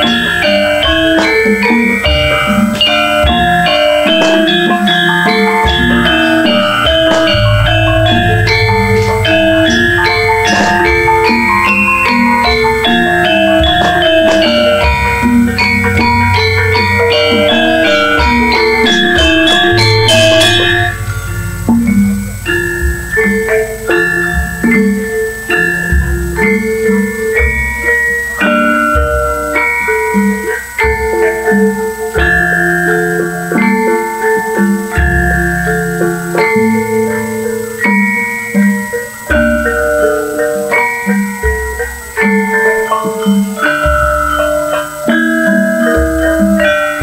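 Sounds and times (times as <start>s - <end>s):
bronze metallophones ringing: 0.0s - 47.0s
hand drum strokes: 0.0s - 47.0s
deep sustained low hum: 5.8s - 14.2s, 17.9s - 26.4s.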